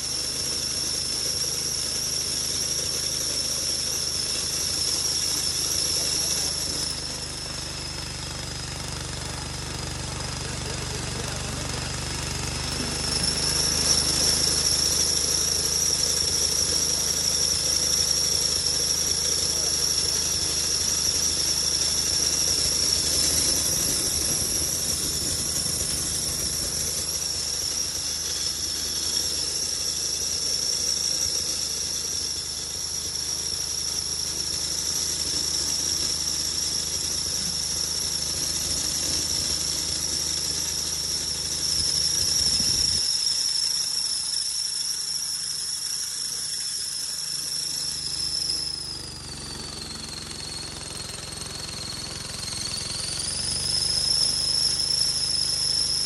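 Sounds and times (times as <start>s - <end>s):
spice grinder whining: 0.0s - 56.0s.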